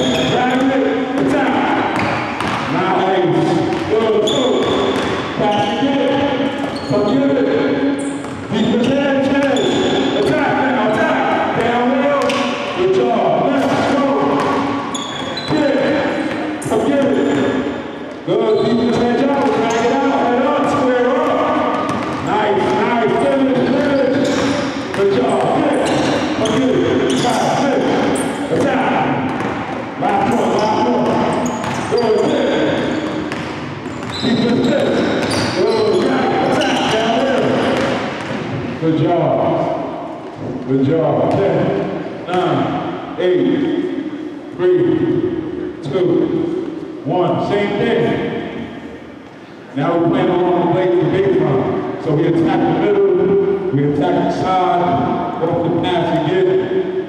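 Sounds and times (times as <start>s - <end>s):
basketballs bouncing on wood floor: 0.0s - 38.8s
voices in echoing gym: 0.0s - 57.0s.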